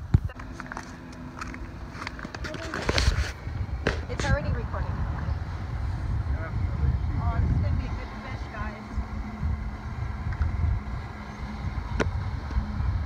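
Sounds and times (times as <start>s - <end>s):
wind on microphone: 0.0s - 13.0s.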